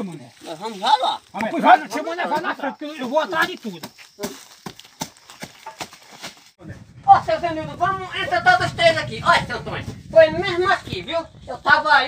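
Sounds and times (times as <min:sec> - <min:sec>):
footsteps on dry leaves: 0:00.0 - 0:01.6, 0:02.8 - 0:06.6.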